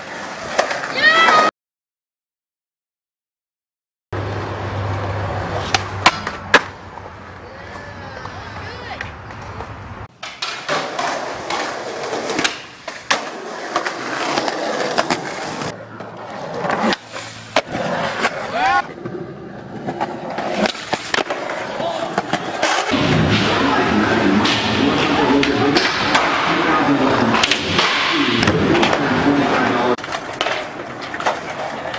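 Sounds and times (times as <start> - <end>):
skateboard wheels rolling on concrete: 0.0 - 1.5, 4.2 - 31.9
skateboard clacks and knocks: 5.6 - 23.5, 29.9 - 31.9.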